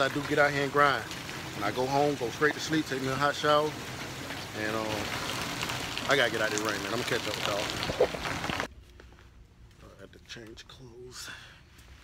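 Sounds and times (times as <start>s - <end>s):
rain hiss: 0.0s - 8.7s.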